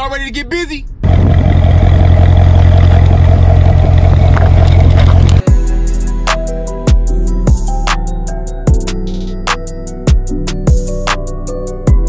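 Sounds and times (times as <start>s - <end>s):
car exhaust drone: 0.9s - 6.3s
music with sharp drum hits: 5.4s - 11.2s.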